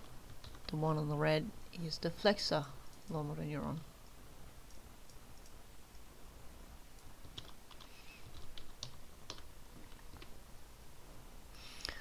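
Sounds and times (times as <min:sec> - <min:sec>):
computer keyboard typing: 0:00.3 - 0:00.8, 0:07.0 - 0:10.3.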